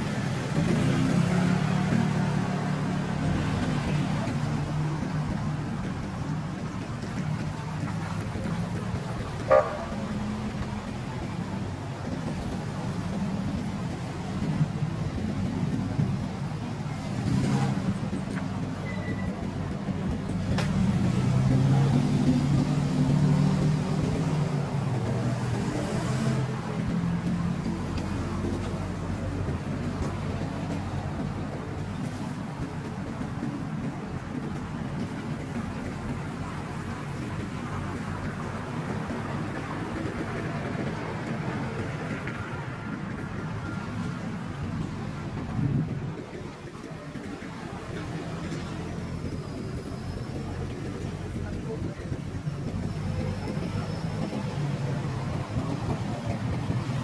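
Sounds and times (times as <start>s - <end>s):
car engines humming: 0.0s - 57.0s
short beep: 18.8s - 19.3s.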